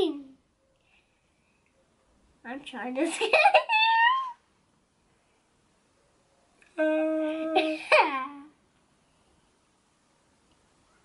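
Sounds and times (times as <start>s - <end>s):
little girl squealing: 3.6s - 4.4s.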